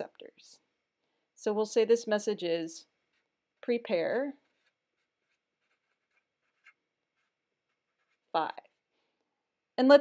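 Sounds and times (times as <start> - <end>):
marker writing on paper: 3.0 - 3.4, 4.4 - 8.8.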